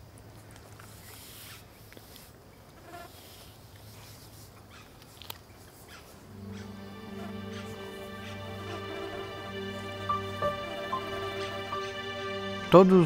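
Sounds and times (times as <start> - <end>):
soft background music: 6.2 - 13.0.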